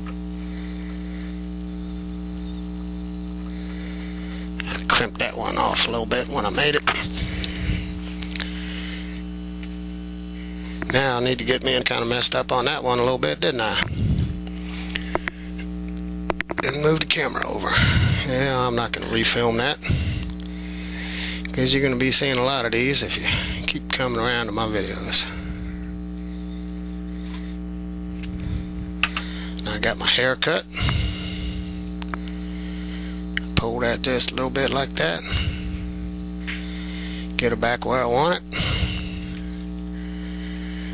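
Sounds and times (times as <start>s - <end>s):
electrical mains hum: 0.0s - 40.9s.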